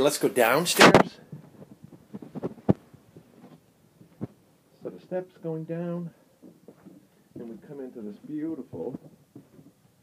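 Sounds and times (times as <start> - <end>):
footsteps on carpeted stairs: 1.3 - 4.4, 6.4 - 9.9.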